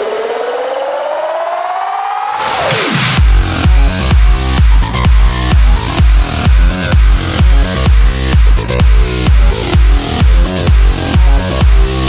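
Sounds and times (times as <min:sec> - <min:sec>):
buzzy synthesizer tone rising: 0:00.0 - 0:12.0.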